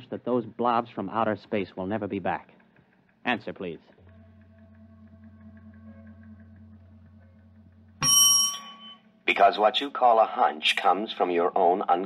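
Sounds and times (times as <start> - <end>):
faint electronic hum: 1.8 - 12.0
bright bell-like ding: 8.0 - 9.1.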